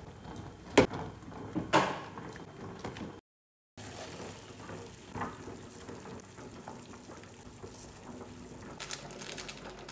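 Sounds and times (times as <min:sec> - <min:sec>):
soup simmering in a pot: 0:03.8 - 0:08.8
granules poured into a pot: 0:08.8 - 0:09.9.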